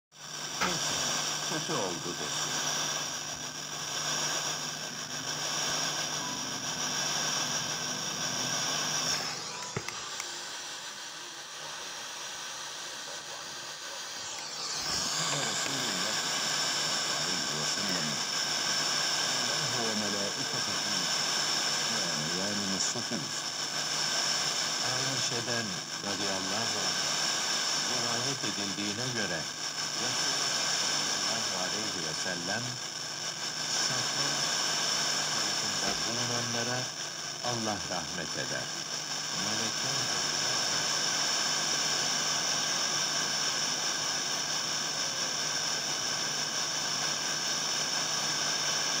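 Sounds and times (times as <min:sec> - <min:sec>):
radio static hiss: 0:00.1 - 0:49.0
faint speech on radio: 0:00.6 - 0:07.5, 0:09.0 - 0:23.6, 0:24.8 - 0:27.1, 0:27.8 - 0:33.0, 0:33.7 - 0:34.6, 0:35.2 - 0:41.0, 0:44.8 - 0:46.3.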